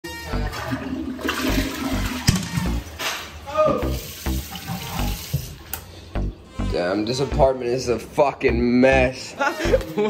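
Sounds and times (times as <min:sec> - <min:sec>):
toilet flushing: 0:00.2 - 0:03.0, 0:03.8 - 0:05.7.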